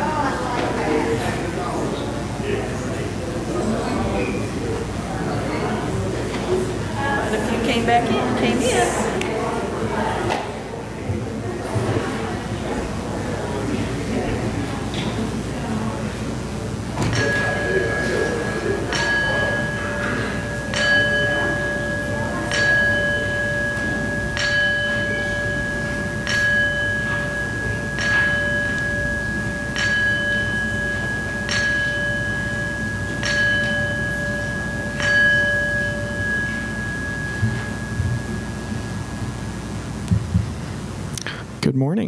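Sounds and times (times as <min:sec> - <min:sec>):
bell ringing: 0:17.0 - 0:40.1.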